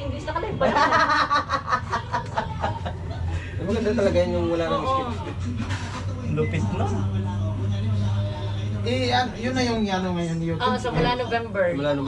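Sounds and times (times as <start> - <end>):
steady low hum: 0.3 - 11.4.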